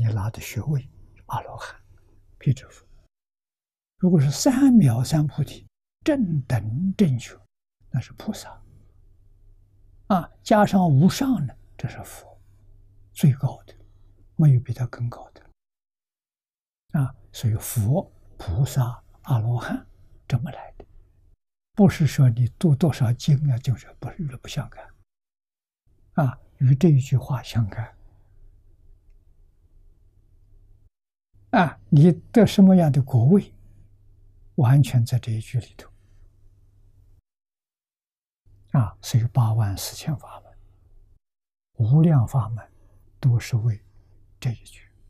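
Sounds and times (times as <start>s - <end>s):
elderly man lecturing: 4.0s - 7.4s, 10.1s - 12.4s, 17.0s - 20.6s, 21.8s - 24.9s, 26.2s - 27.9s, 31.6s - 33.5s, 38.7s - 40.5s, 41.8s - 43.8s.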